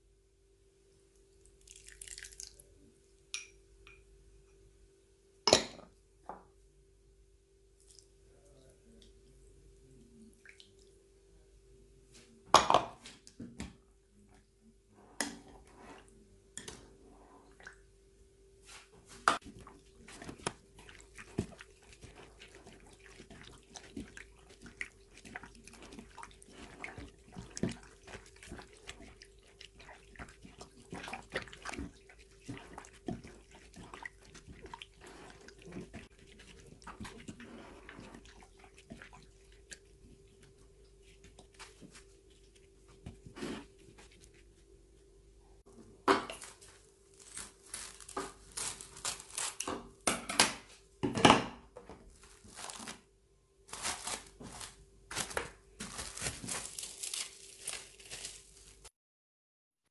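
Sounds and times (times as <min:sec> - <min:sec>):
wet squelching of marinated meat: 0:19.4 - 0:44.4.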